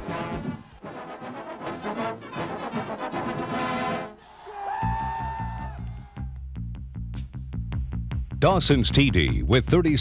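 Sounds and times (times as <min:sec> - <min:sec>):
marching band brass playing: 0:00.0 - 0:04.2.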